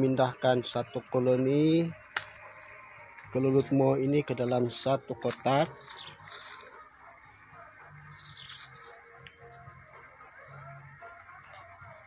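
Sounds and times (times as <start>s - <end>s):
bird chirp: 0.0s - 12.0s
high-pitched insect drone: 0.0s - 12.0s.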